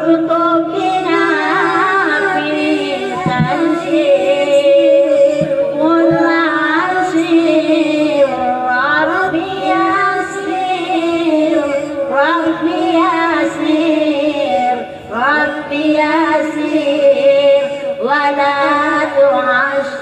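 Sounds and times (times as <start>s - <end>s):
woman singing into microphone: 0.0s - 20.0s.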